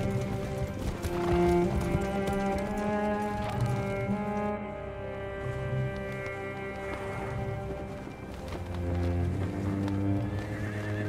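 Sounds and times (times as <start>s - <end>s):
film score of low bowed strings: 0.0s - 11.0s
horse hooves clip-clopping on turf: 0.0s - 11.0s.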